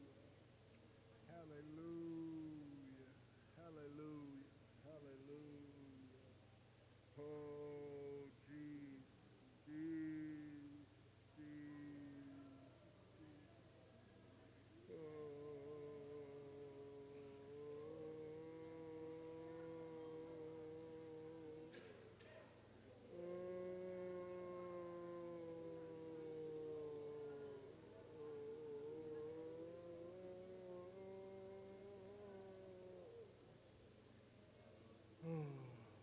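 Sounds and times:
low steady hum: 0.0 - 36.0
person chanting a held note: 1.3 - 6.3, 7.1 - 9.1, 9.7 - 13.6, 14.7 - 33.5, 35.2 - 36.0.

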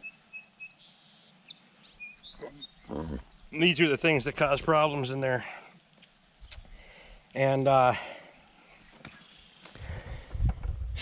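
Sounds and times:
small songbird chirping: 0.0 - 4.2.

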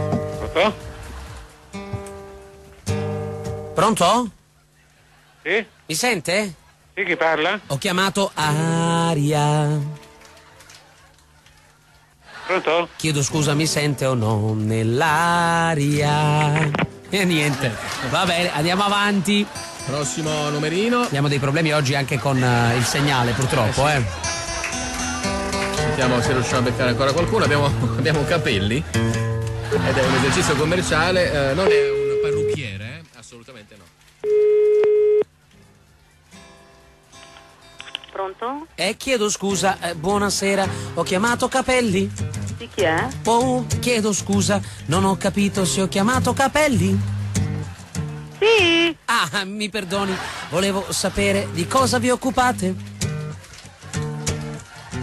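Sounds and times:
faint background music: 0.0 - 55.0
faint music over telephone line: 31.5 - 32.8
telephone ringback beep: 31.7 - 32.6, 34.2 - 35.2.

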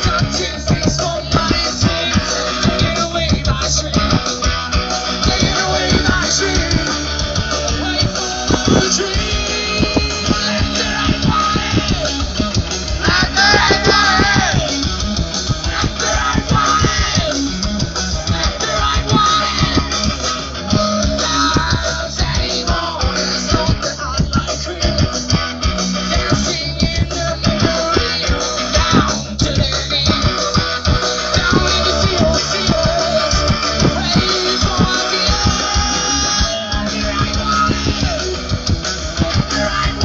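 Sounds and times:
bass guitar: 0.0 - 40.0
drum hits: 0.0 - 40.0
electric guitars: 0.0 - 40.0.

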